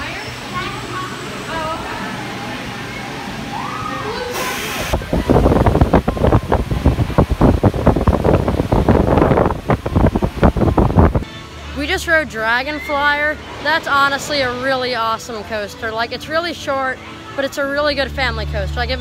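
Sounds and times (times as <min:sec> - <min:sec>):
roller coaster squeal: 0:12.4 - 0:14.9.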